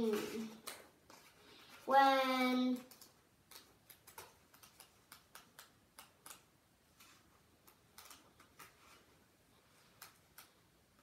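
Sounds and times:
book pages flipping: 0:00.0 - 0:01.9, 0:02.7 - 0:09.1.

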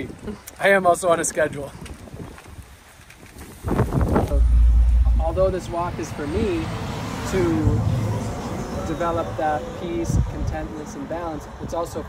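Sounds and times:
wind buffeting microphone: 0:01.6 - 0:08.5.

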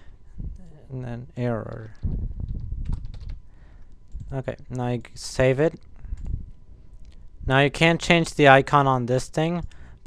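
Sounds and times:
keyboard typing: 0:01.6 - 0:04.4.

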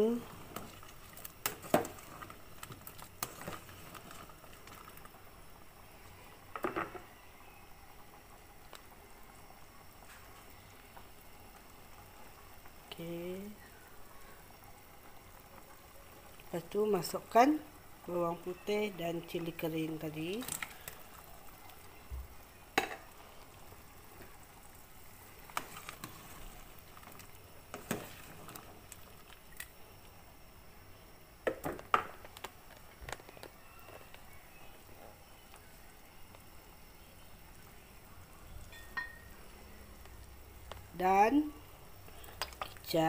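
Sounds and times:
soup bubbling in a pot: 0:00.0 - 0:43.0.

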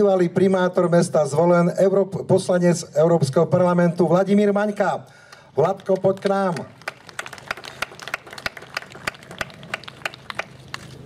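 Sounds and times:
people clapping hands: 0:05.3 - 0:11.0.

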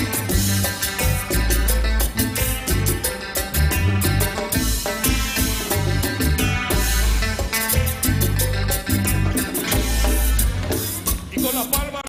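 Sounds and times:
accordion: 0:00.0 - 0:12.0
drums keeping a dance beat: 0:00.0 - 0:12.0
electric bass: 0:00.0 - 0:12.0.

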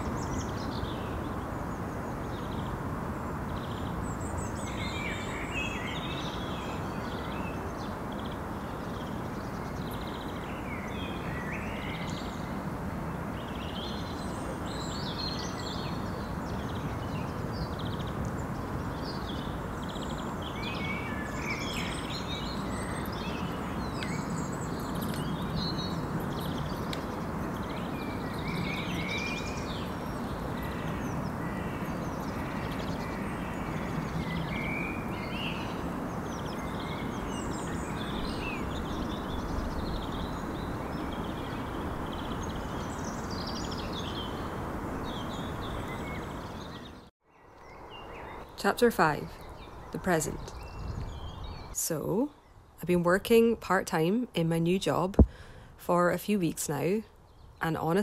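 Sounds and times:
outdoor background noise: 0:00.0 - 0:58.0
small birds chirping: 0:00.0 - 0:58.0.

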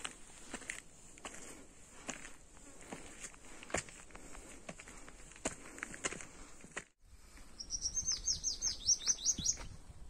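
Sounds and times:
footsteps on stone steps: 0:00.0 - 0:07.5.

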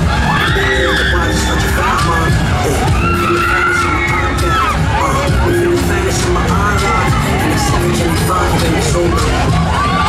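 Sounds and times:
dance music with heavy bass beat: 0:00.0 - 0:10.0
riders screaming: 0:00.1 - 0:05.7.

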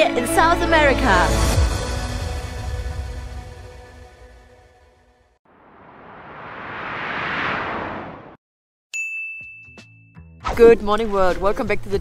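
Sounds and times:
whoosh sound effect: 0:05.5 - 0:08.4
bright ringing ding: 0:09.0 - 0:10.1.

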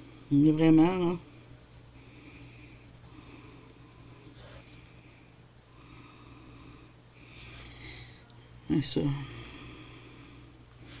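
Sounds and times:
pencil scratching on paper: 0:00.8 - 0:04.7, 0:10.3 - 0:11.0.

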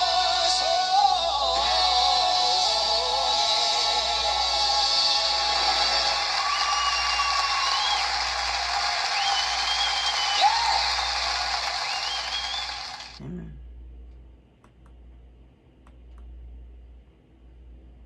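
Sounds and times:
audience applauding: 0:03.8 - 0:13.2.

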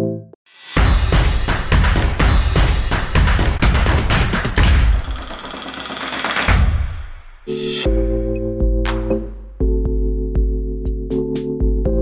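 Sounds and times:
intro music with driving beat: 0:00.6 - 0:12.0
heavy drum hit: 0:00.8 - 0:05.5.

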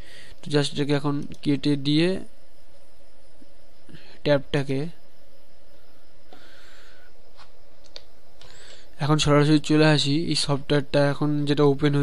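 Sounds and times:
microphone hiss: 0:00.0 - 0:12.0
soft clicks: 0:07.4 - 0:08.6.

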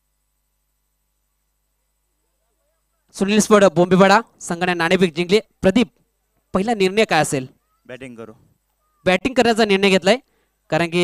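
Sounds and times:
faint voice: 0:02.2 - 0:03.1, 0:07.5 - 0:09.1
man speaking over public address: 0:03.1 - 0:08.4, 0:09.0 - 0:11.0.

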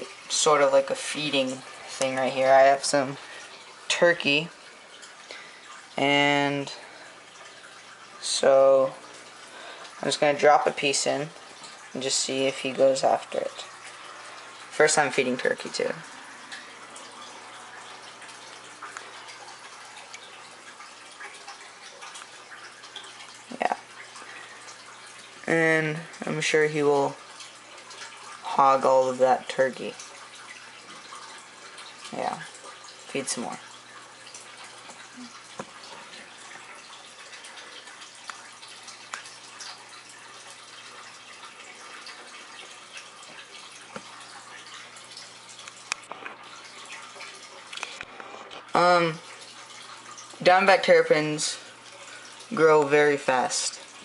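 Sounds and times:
faint water drips: 0:00.0 - 0:54.0
water trickling in a tank: 0:00.0 - 0:54.0.

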